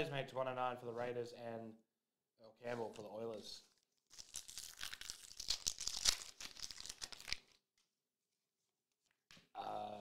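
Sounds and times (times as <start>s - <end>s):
foil wrapper tearing and crinkling: 4.0s - 7.6s.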